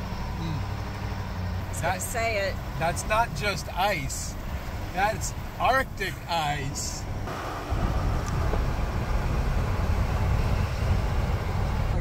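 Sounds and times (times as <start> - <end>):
road and engine rumble: 0.0 - 12.0.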